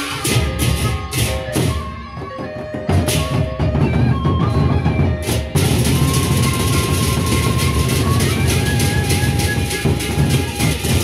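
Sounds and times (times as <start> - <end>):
cymbals clashing: 0.0 - 1.9, 5.6 - 11.0
barrel drums beaten fast: 2.9 - 11.0.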